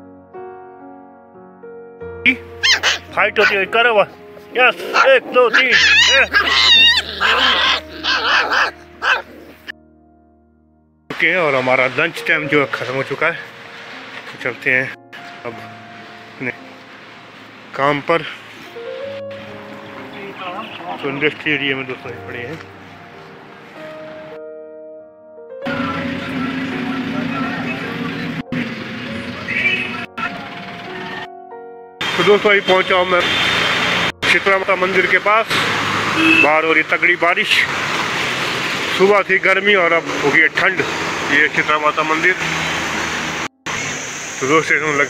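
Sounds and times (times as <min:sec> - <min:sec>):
road noise: 0:02.3 - 0:09.7, 0:11.1 - 0:24.4, 0:25.6 - 0:45.0
puppies yipping and whining: 0:02.6 - 0:03.6, 0:04.6 - 0:09.7
bus engine drone: 0:25.7 - 0:31.3, 0:32.0 - 0:45.0.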